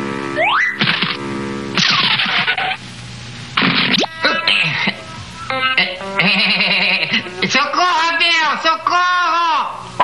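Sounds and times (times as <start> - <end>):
cartoon music: 0.4 - 1.2, 3.7 - 4.6, 5.4 - 6.6.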